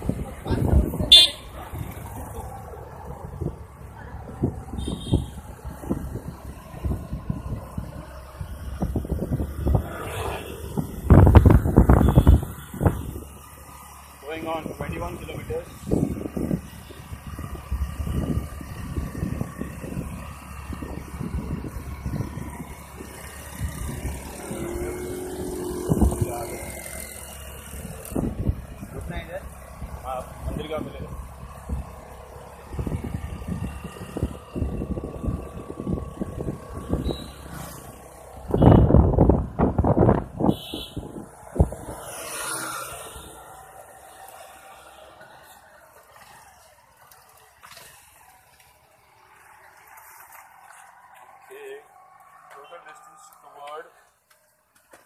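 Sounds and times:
wind buffeting microphone: 0.0s - 13.4s, 14.6s - 42.2s
road noise: 0.0s - 55.0s.

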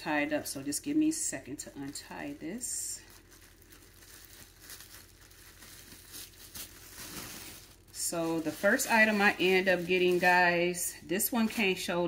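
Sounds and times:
packaging rustling and crinkling: 1.5s - 10.7s.

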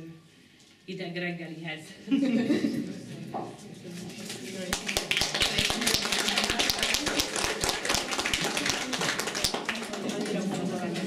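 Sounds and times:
people clapping: 4.6s - 11.0s.

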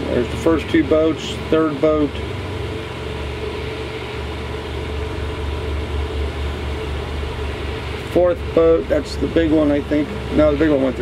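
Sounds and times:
boat engines idling: 0.0s - 11.0s.

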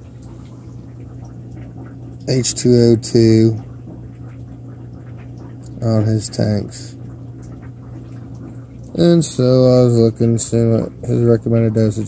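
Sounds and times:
aquarium equipment humming: 0.0s - 12.0s.

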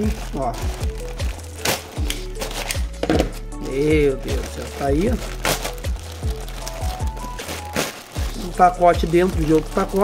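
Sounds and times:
knife tearing plastic mailer bag: 0.0s - 2.9s, 3.6s - 10.0s
background music with low beat: 0.0s - 10.0s.

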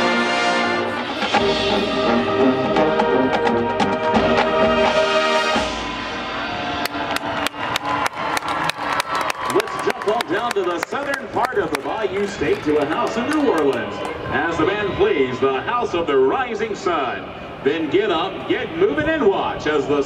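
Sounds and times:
marching band brass chord: 0.0s - 7.6s.

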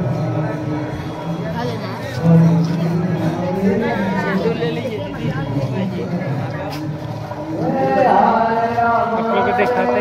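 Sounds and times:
market hubbub of voices: 0.0s - 10.0s.

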